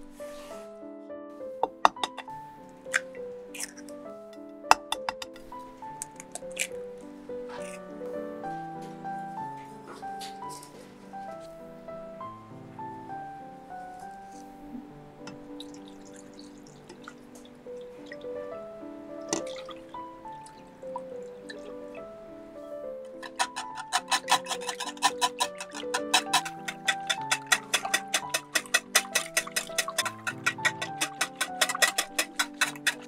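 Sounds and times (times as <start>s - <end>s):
background music: 0.0s - 33.0s
egg shell cracking: 1.6s - 4.0s, 4.7s - 6.8s, 7.5s - 7.8s, 23.2s - 33.0s
milk splashing and dripping: 1.6s - 7.8s, 15.2s - 33.0s
wet squish of egg dropping: 6.0s - 6.8s.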